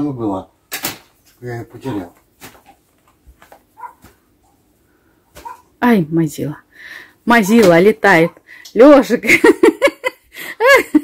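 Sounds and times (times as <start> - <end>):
flyswatter slap: 0.7 - 1.1.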